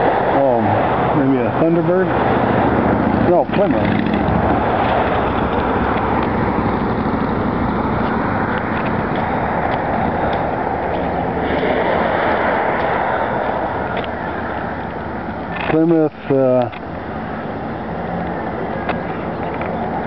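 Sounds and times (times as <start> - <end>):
road traffic: 0.0 - 20.0.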